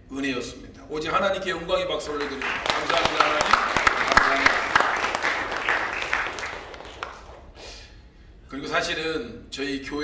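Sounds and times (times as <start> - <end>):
congregation applauding: 2.0 - 7.6.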